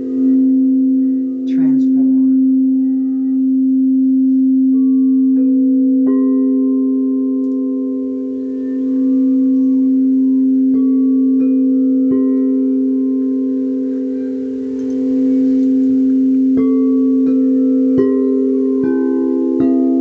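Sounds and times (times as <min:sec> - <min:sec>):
singing bowls droning: 0:00.0 - 0:20.0
struck bowl notes chiming: 0:00.0 - 0:20.0.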